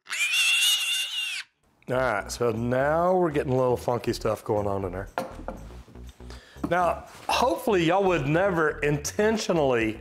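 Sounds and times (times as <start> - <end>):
guinea pig squealing: 0.0 - 1.6.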